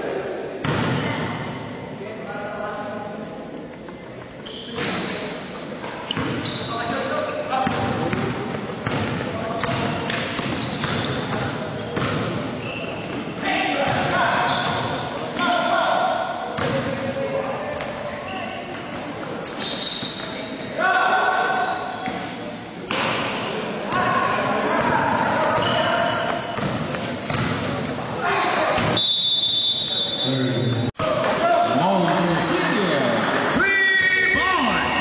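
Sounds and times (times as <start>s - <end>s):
echoing voices in a hall: 0.0s - 35.0s
basketball bouncing thuds: 26.6s - 27.7s.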